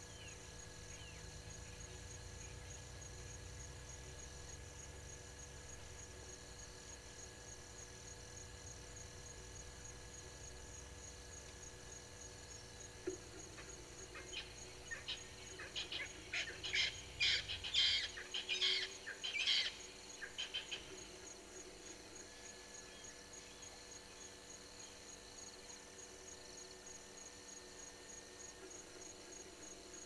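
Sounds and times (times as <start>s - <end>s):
insect trill: 0.0s - 30.0s.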